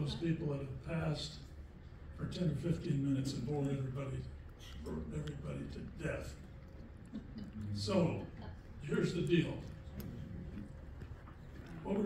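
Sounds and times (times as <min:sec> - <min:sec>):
man speaking over a microphone: 0:00.0 - 0:01.6, 0:02.2 - 0:06.5, 0:07.6 - 0:10.0, 0:11.8 - 0:12.0
steady low hum: 0:00.0 - 0:12.0.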